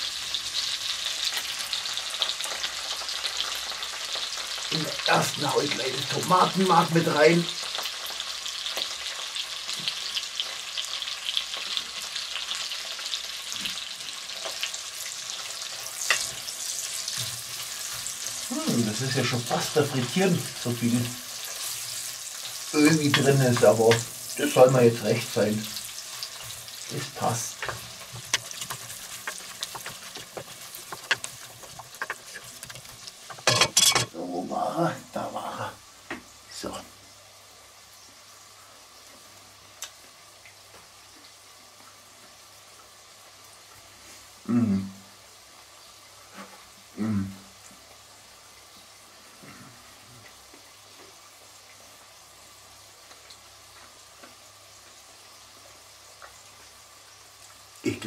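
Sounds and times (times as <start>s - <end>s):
vegetables sizzling in hot oil: 0.0s - 58.0s
wooden spatula scraping pot: 27.5s - 34.1s
man humming: 44.5s - 45.0s, 47.0s - 47.4s.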